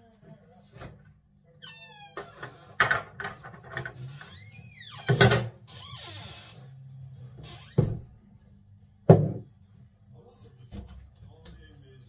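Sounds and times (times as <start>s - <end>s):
faint background speech: 0.0s - 2.8s, 9.0s - 12.0s
knock: 9.1s - 9.5s.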